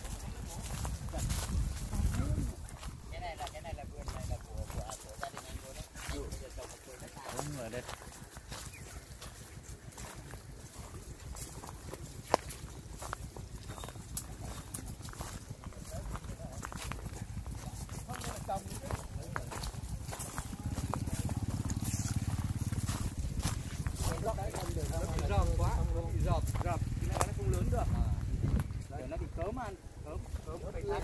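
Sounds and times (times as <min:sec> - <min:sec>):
footsteps on dry leaves and twigs: 0:00.0 - 0:31.0.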